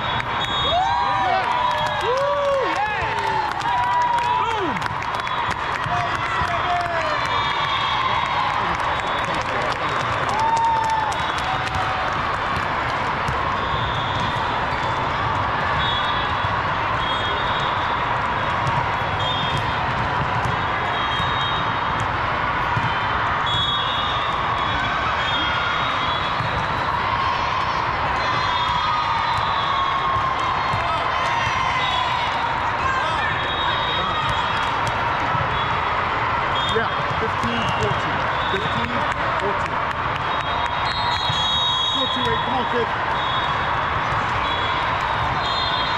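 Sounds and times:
crowd talking and cheering: 0:00.0 - 0:45.9.

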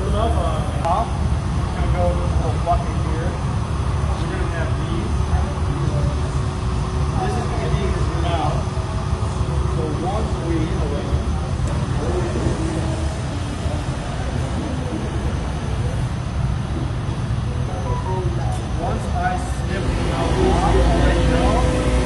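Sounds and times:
faint voices: 0:00.0 - 0:22.0
furnaces and fans rumbling: 0:00.0 - 0:22.0.

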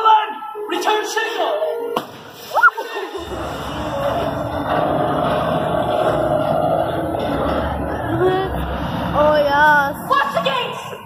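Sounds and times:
loud low rumble: 0:03.2 - 0:10.4.

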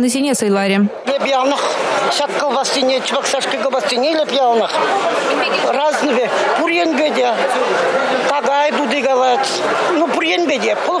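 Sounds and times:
woman speaking: 0:00.0 - 0:00.9
crowd chatter: 0:00.0 - 0:11.0.

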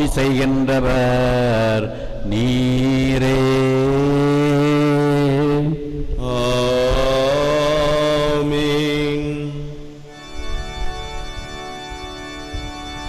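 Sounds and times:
man chanting through microphone: 0:00.0 - 0:10.1.

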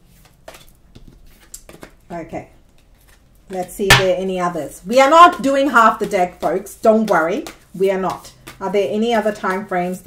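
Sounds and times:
cards tapping and rustling: 0:00.1 - 0:02.0, 0:05.4 - 0:09.7.

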